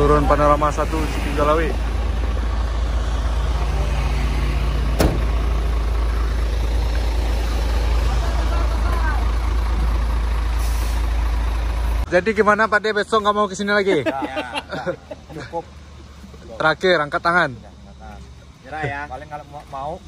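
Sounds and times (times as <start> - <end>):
diesel engine idling: 0.0 - 20.0
short hiss of air: 10.5 - 11.2.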